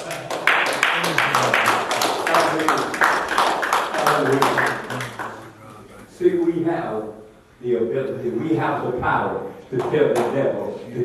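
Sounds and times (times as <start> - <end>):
rhythmic hand clapping: 0.0 - 5.5.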